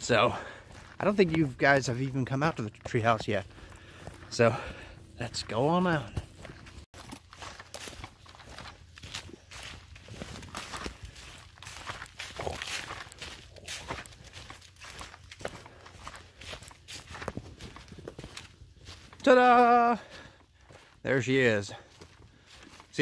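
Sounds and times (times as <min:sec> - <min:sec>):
footsteps on dry leaves: 0:00.0 - 0:23.0.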